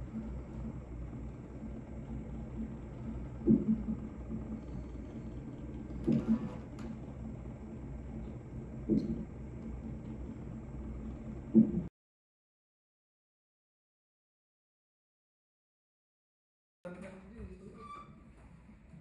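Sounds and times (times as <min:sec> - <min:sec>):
steady low room hum: 0:00.0 - 0:11.9, 0:16.9 - 0:19.0.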